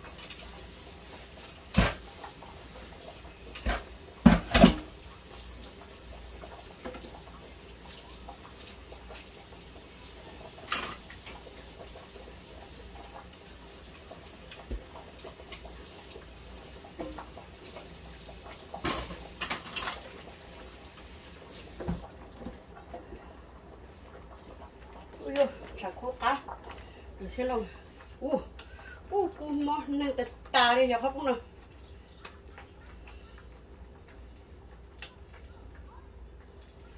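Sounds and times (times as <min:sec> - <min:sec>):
running water: 0:00.0 - 0:36.9.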